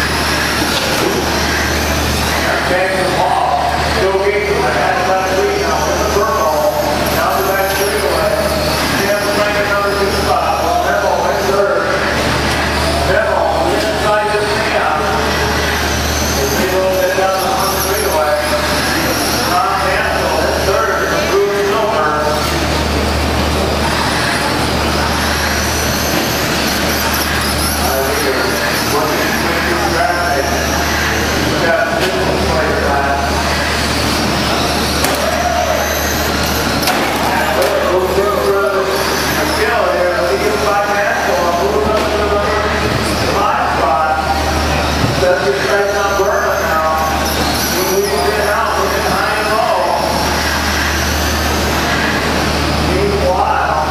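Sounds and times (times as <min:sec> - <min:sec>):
rc truck motors whining: 0:00.0 - 0:53.5
indistinct voices talking: 0:00.0 - 0:53.9.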